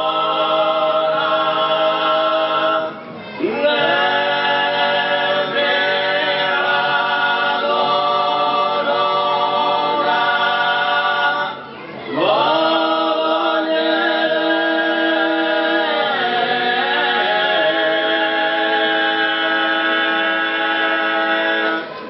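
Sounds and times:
male voices singing a cappella: 0.0 - 22.0.

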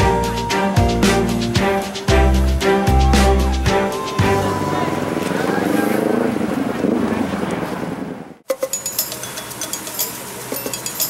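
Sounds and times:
speedboat outboard engines running: 0.0 - 8.3.

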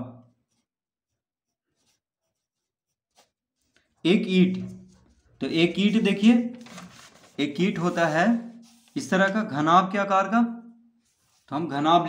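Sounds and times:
pencil scratching on paper: 0.3 - 4.0, 4.8 - 9.4, 11.0 - 11.6.

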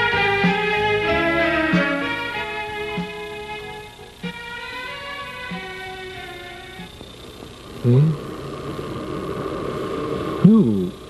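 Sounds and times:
steady sustained sound: 0.0 - 11.0
person speaking: 7.8 - 8.2, 10.4 - 11.0.

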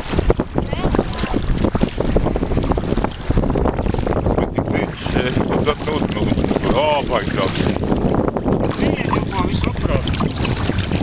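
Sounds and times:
calm sea water: 0.0 - 11.0
wind buffeting microphone: 0.0 - 11.0.

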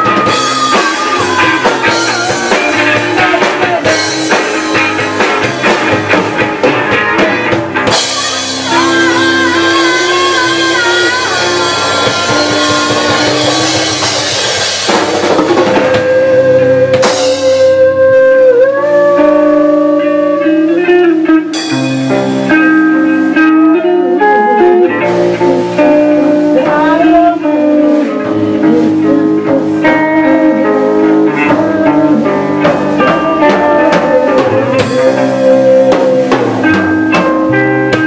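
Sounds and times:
drum kit with cymbal crashes: 0.0 - 17.8, 21.4 - 23.3, 28.0 - 38.0
electric bass: 0.0 - 38.0
electric guitar bent notes: 0.0 - 38.0.

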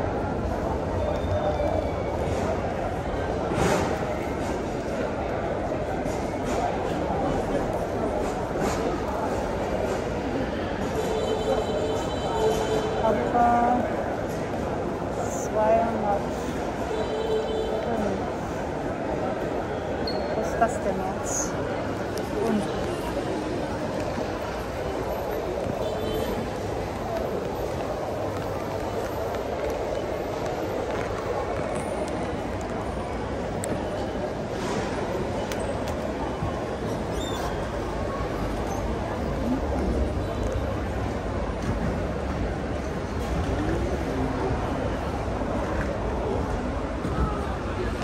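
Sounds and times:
crowd chatter: 0.0 - 48.0.

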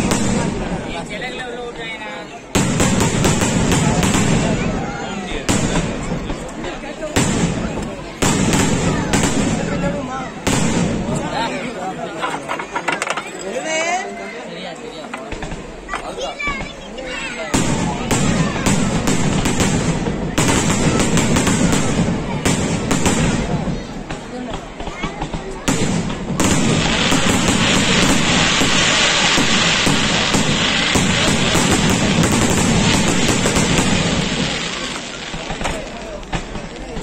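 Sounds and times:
firework bangs and crackling: 0.0 - 12.1, 15.1 - 37.0.

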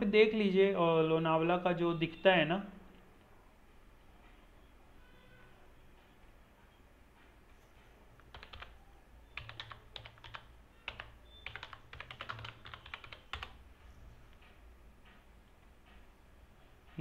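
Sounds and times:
keyboard typing: 8.1 - 13.7.

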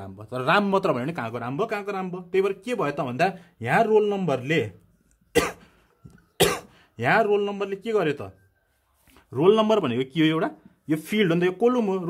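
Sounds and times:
man coughing: 5.3 - 5.8, 6.4 - 6.8.

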